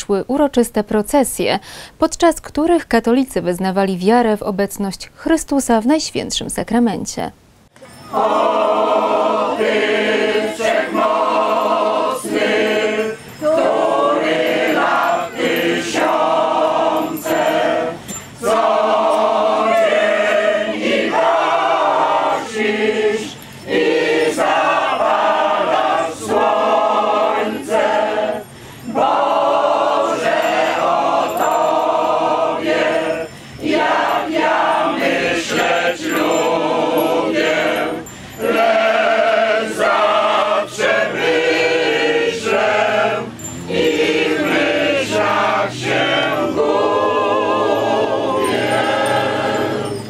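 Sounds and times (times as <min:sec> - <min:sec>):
choir of women singing hymn: 0:08.0 - 0:50.0.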